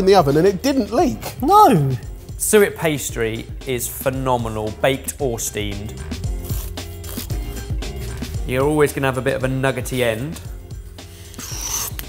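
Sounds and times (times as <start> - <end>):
background music: 0.0 - 12.0
knife rasping through pastry crust: 11.2 - 12.0.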